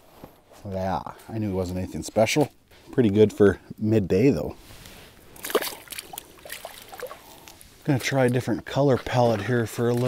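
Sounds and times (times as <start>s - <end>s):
water sloshing and dribbling: 5.3s - 10.0s
fish splashing into water: 5.4s - 7.6s.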